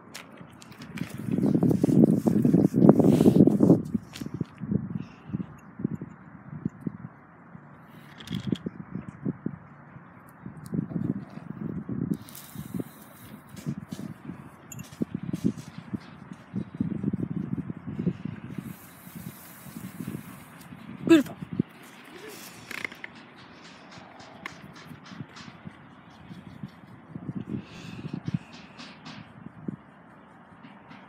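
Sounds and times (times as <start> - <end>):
steady outdoor hiss: 0.0 - 31.0
microphone handling noise: 0.7 - 4.6.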